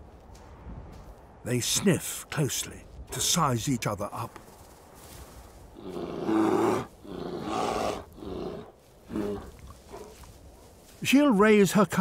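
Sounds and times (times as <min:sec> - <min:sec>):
polar bears growling: 0:05.8 - 0:09.7.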